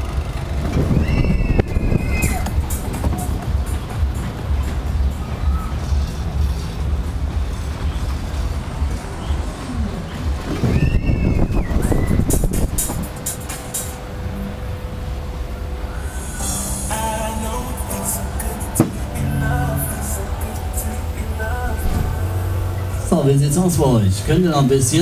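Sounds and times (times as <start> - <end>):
wind rumble on microphone: 0.0 - 16.7
fairground music: 0.0 - 25.0
noisy rush: 0.0 - 25.0.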